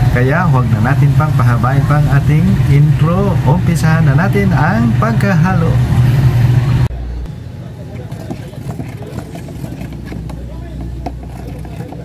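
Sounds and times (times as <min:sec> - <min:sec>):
low rumble: 0:00.0 - 0:07.6
faint background voices: 0:06.9 - 0:12.0
faint scrapes and taps: 0:08.1 - 0:12.0
paint stirred in metal can: 0:08.1 - 0:12.0.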